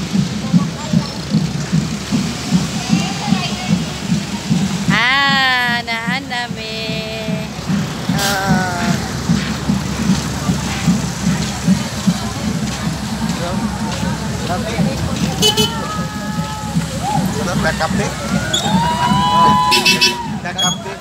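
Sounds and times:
crowd noise: 0.0 - 21.0
low music beat: 0.0 - 21.0
wind: 0.0 - 21.0.

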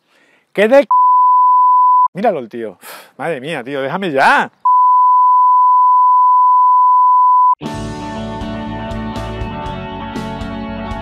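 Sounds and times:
censor bleep tone: 0.9 - 2.1, 4.7 - 7.6.

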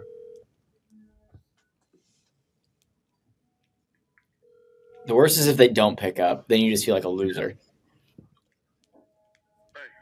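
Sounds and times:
phone ringback tone: 0.0 - 0.4, 4.4 - 5.1.

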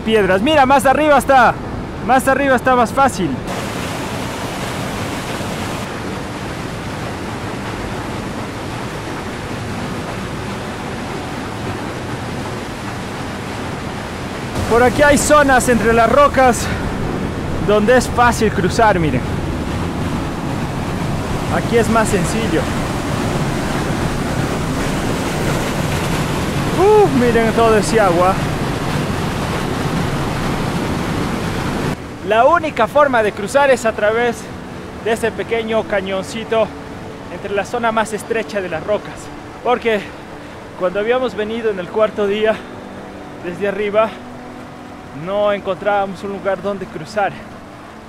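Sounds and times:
stream rushing through rocks: 0.0 - 48.0.

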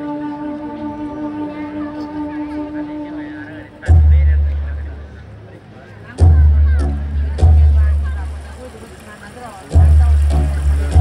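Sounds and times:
faint wavering voices: 0.0 - 11.0
deep booming drum beat: 3.8 - 5.0, 6.2 - 8.6, 9.6 - 11.0.

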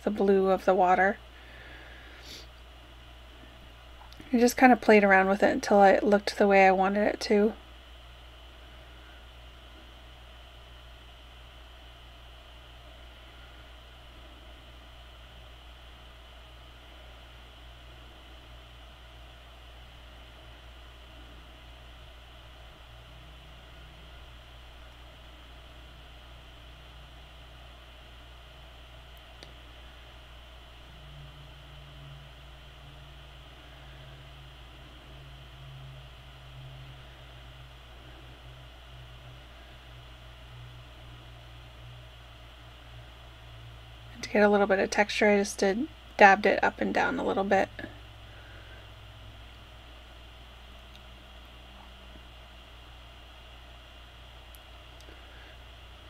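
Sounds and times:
faint hiss: 0.0 - 6.8
low electrical hum: 0.0 - 56.0.

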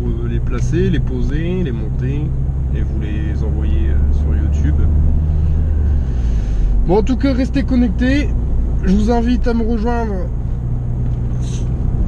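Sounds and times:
car engine drone: 0.0 - 12.0
road rumble: 0.0 - 12.0.

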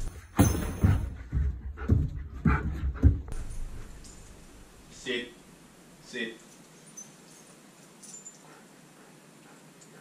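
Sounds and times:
dog panting: 1.0 - 4.0, 8.2 - 10.0.

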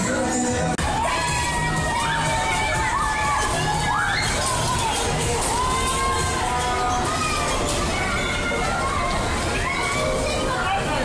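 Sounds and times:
children shouting: 0.8 - 11.0.

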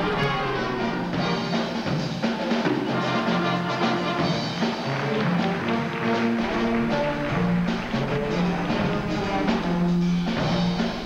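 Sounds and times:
drum kit beat: 0.0 - 11.0
jazz band playing: 0.0 - 11.0.

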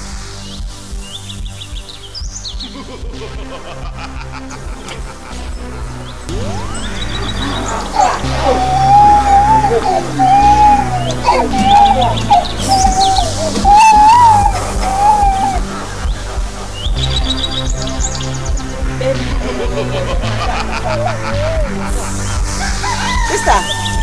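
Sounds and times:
gliding melody over bass: 5.6 - 22.6
high bird-like chirps: 6.3 - 15.8.

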